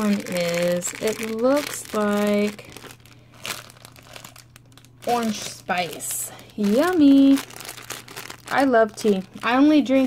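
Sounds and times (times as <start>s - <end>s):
cellophane crinkling: 0.0s - 10.0s.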